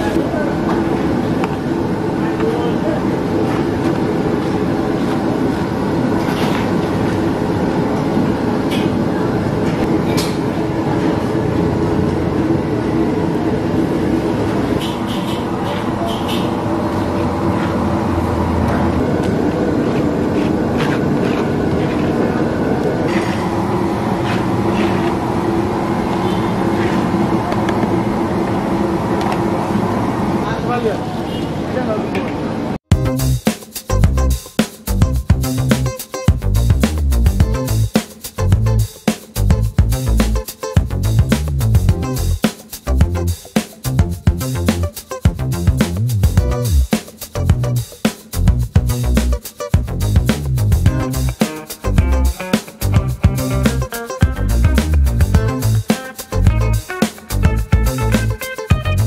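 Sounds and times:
background chatter: 0.0s - 5.9s, 8.0s - 23.2s
traffic-like rumble: 0.0s - 33.4s, 34.0s - 59.0s.

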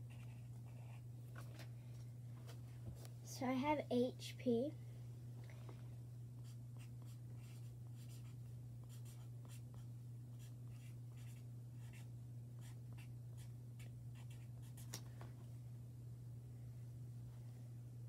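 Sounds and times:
steady low hum: 0.0s - 18.0s
pencil scratching on paper: 6.4s - 9.8s, 10.4s - 14.9s.

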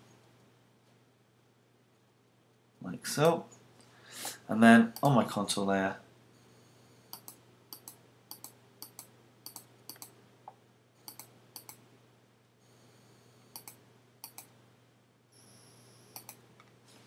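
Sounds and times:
faint low hum: 0.0s - 17.0s
computer mouse clicks: 7.1s - 10.2s, 11.0s - 11.8s, 13.5s - 14.6s, 16.1s - 16.4s.

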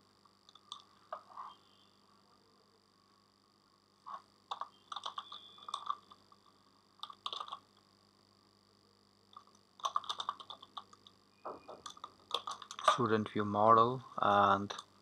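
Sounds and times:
computer keyboard typing: 4.5s - 6.2s, 7.0s - 7.6s, 9.4s - 11.1s, 11.8s - 13.0s.

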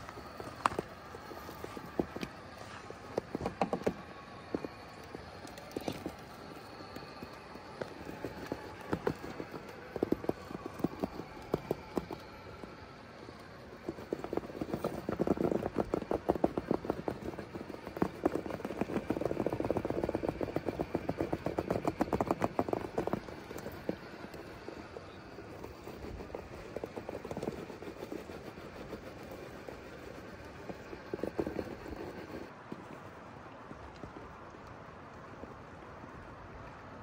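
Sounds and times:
toy car clattering on rock: 0.0s - 32.5s.

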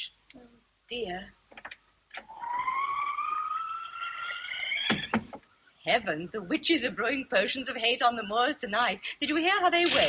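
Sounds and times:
wind howl wail rising in pitch: 2.2s - 5.1s.

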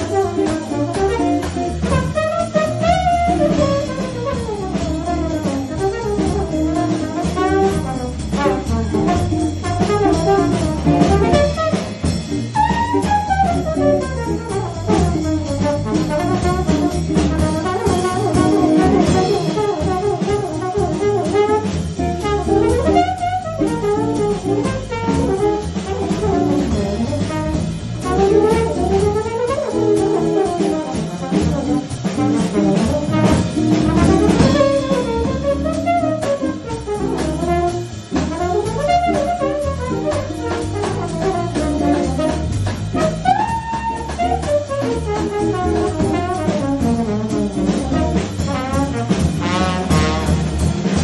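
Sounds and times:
small jazz band with drum kit: 0.0s - 51.0s
trombone jazz solo: 0.0s - 51.0s.

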